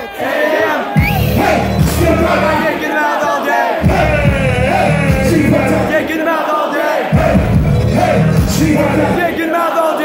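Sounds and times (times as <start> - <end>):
crowd yelling along: 0.0 - 10.0
shouted rap vocals: 0.0 - 10.0
heavy bass beat: 0.9 - 2.8, 3.8 - 6.1, 7.1 - 9.4.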